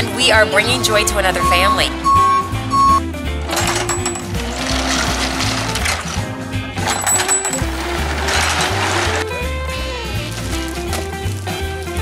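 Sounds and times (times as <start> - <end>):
truck reversing alarm beeping: 0.0 - 3.1
background music with steady beat: 0.0 - 12.0.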